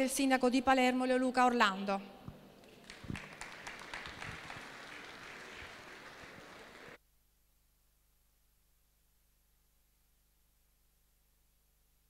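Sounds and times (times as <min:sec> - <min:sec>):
audience applauding: 0:02.6 - 0:07.0.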